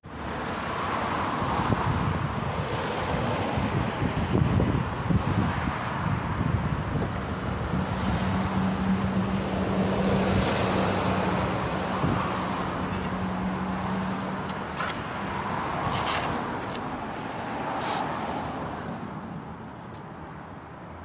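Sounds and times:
outdoor noise: 0.0 - 21.0.

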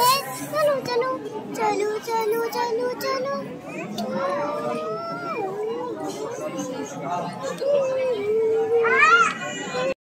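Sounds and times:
children's voices outdoors: 0.0 - 10.0
child's high-pitched call: 7.6 - 9.9.

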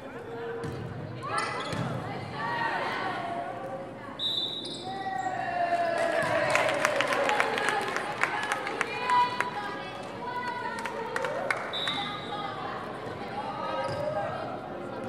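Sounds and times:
players shouting: 5.2 - 9.4
cheering: 5.3 - 12.6.

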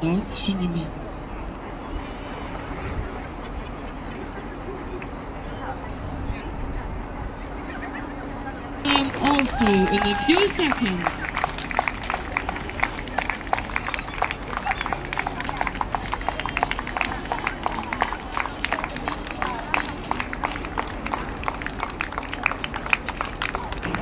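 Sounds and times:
faint crowd voices: 0.0 - 24.0
rhythmic clapping: 8.9 - 24.0.

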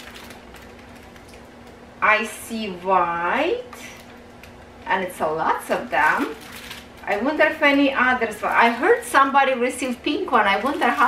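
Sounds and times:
small clicks of plastic packets: 0.0 - 1.8, 3.6 - 4.8, 6.1 - 7.3
plastic packets crinkling: 0.0 - 1.9, 3.6 - 4.9, 5.6 - 11.0.

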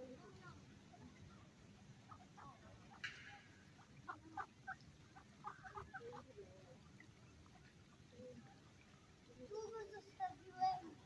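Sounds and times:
ducks quacking: 2.0 - 6.8.

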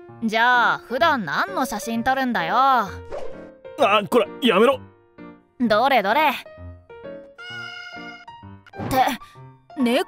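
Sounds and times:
light background music: 0.0 - 10.0
cat meowing: 7.4 - 8.3.

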